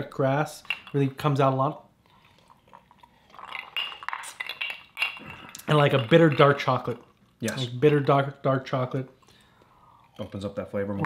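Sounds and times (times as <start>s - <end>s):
ice cubes clinking in glasses: 3.4s - 6.8s.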